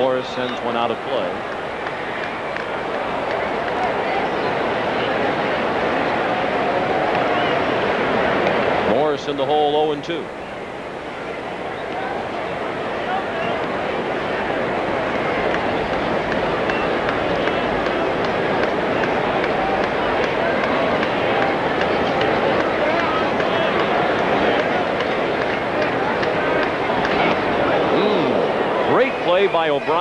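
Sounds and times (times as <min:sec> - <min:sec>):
stadium crowd din: 0:00.0 - 0:30.0.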